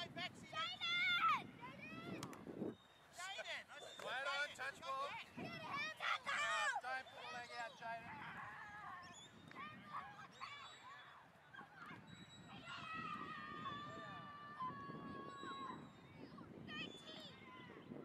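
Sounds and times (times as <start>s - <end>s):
distant children shouting: 5.4s - 16.1s.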